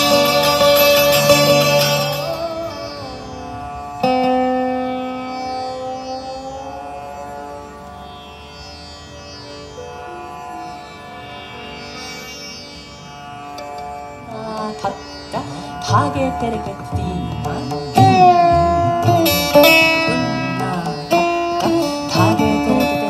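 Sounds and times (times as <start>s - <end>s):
slide guitar slow melody: 0.0s - 8.5s, 14.3s - 23.0s.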